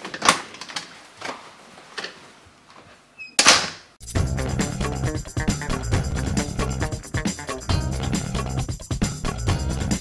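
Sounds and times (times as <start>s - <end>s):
door banging shut: 3.4s - 3.9s.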